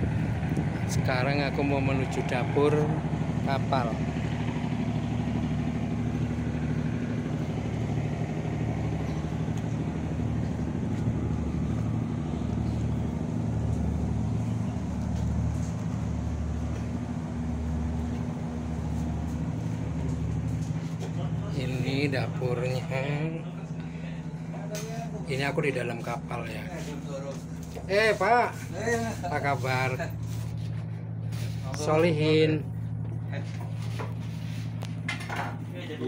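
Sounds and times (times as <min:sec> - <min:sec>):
boat engine throbbing hum: 0:00.0 - 0:36.0.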